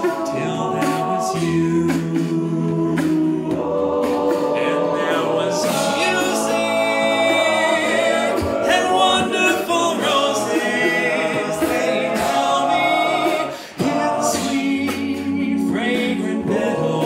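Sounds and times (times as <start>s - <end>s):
men's choir singing in harmony: 0.0s - 17.0s.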